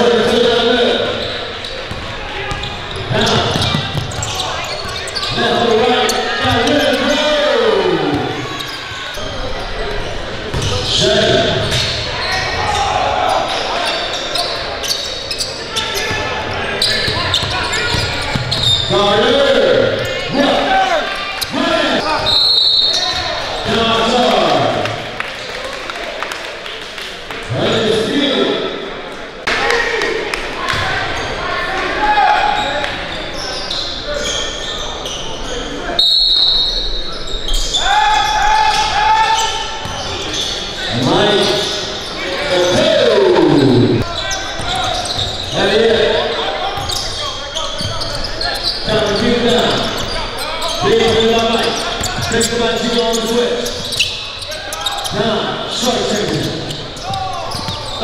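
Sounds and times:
basketball bouncing on court: 0:01.6 - 0:05.6, 0:10.5 - 0:10.9, 0:16.0 - 0:19.0, 0:44.5 - 0:45.5
indistinct voices: 0:37.7 - 0:58.0.

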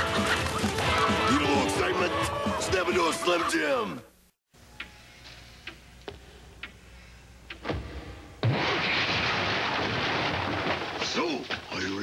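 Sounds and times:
music: 0:00.0 - 0:03.8, 0:04.6 - 0:06.2.

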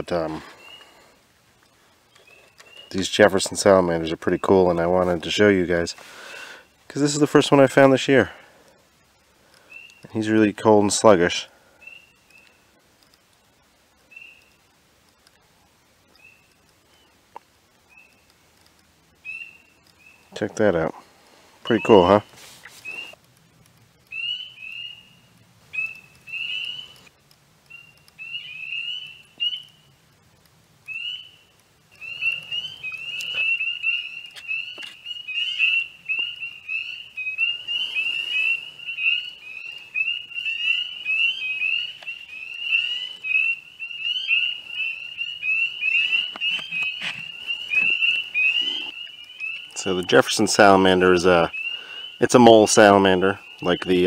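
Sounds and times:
spring peepers calling: 0:00.0 - 0:08.4, 0:09.2 - 0:15.2, 0:15.8 - 0:18.4, 0:19.1 - 0:23.2, 0:23.9 - 0:30.1, 0:30.8 - 0:54.0.

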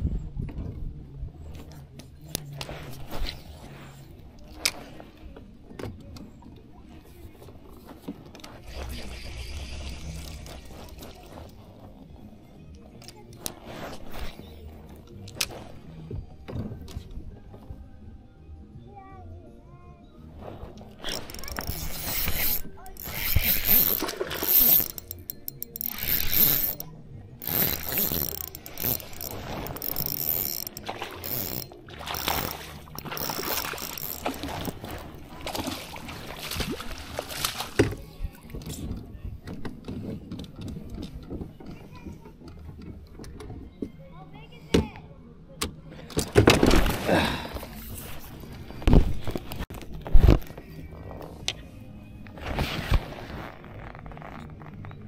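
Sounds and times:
fishing reel whirring and clicking: 0:21.0 - 0:35.2.

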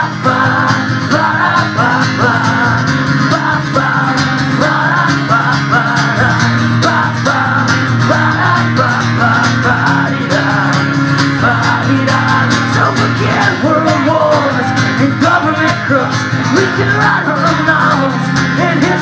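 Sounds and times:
acoustic guitar strumming: 0:00.0 - 0:19.0
man singing: 0:00.0 - 0:19.0.

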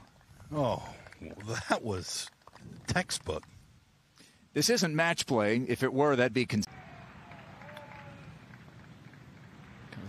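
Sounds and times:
faint outdoor background hiss: 0:00.0 - 0:10.0.

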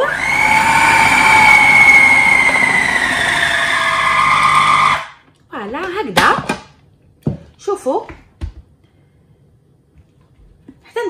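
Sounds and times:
food processor motor whining: 0:00.0 - 0:05.2.

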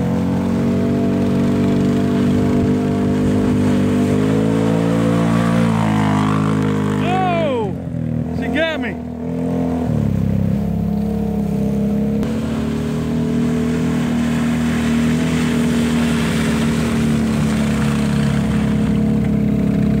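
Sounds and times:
atv engines running: 0:00.0 - 0:20.0.

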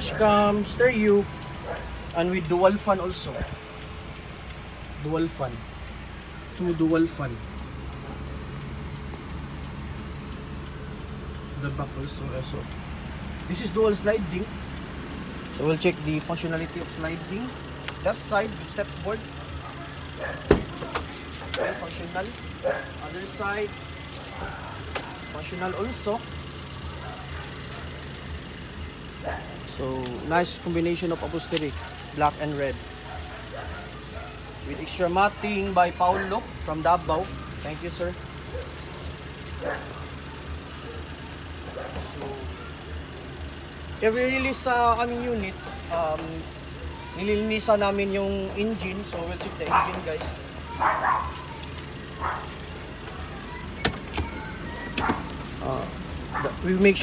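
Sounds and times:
vehicle engine idling: 0:00.0 - 0:57.0.

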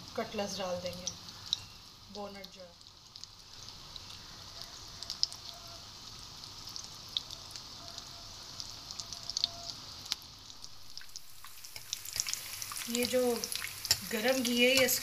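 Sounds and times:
deep-frying sizzle with pops: 0:00.0 - 0:15.0.

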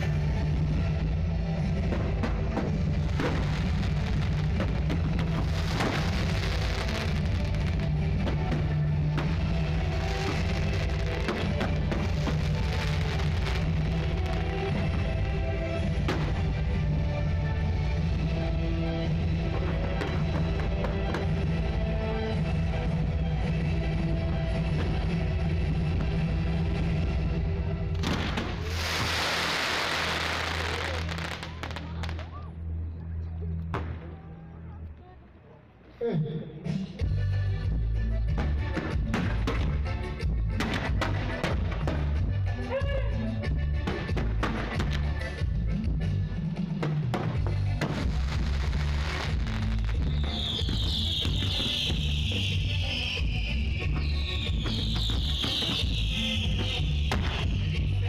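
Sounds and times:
fireworks crackling: 0:00.0 - 0:32.4, 0:38.4 - 0:42.6, 0:46.7 - 0:58.0
sharp firework pops: 0:01.9 - 0:07.2, 0:27.9 - 0:31.0, 0:40.6 - 0:42.2, 0:43.8 - 0:45.1, 0:53.8 - 0:57.8.

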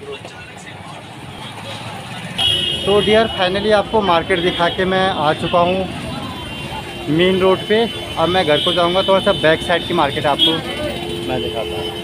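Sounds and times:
faint background chatter: 0:00.0 - 0:08.7
busy street traffic: 0:00.0 - 0:12.0
high-pitched vehicle horn: 0:02.4 - 0:03.6, 0:06.3 - 0:12.0.

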